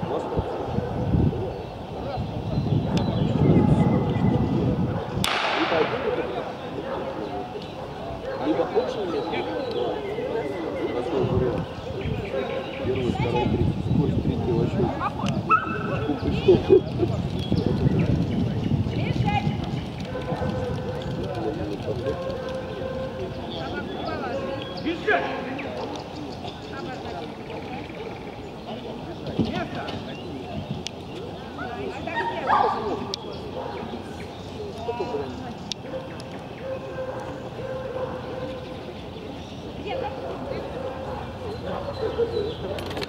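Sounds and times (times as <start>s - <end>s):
wind buffeting microphone: 0.0s - 10.0s, 10.6s - 43.0s
faint distant voices: 0.0s - 43.0s
people talking: 5.3s - 43.0s.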